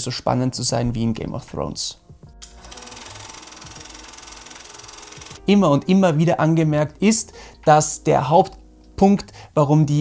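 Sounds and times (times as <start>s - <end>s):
machine-like ticking background music: 2.4s - 6.0s.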